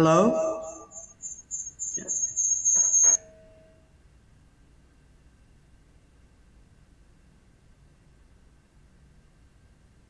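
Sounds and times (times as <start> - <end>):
voice fragments: 0.0 - 1.0
high-pitched feedback whine: 0.0 - 4.0.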